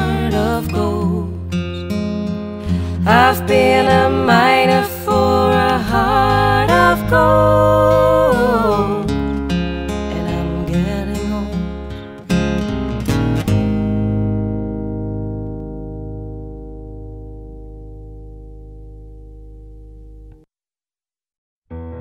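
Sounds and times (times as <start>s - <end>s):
acoustic guitar chords strummed: 0.0s - 20.5s
piano music: 21.7s - 22.0s.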